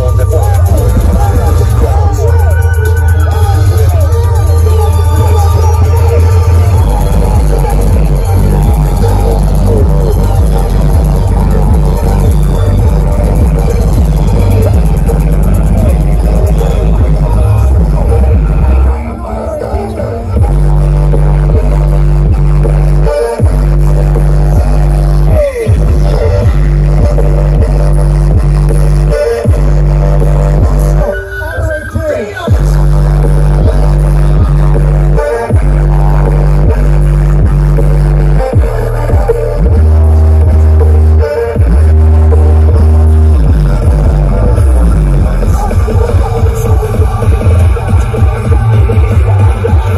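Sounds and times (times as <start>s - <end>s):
loud electronic dance music: 0.0s - 49.9s.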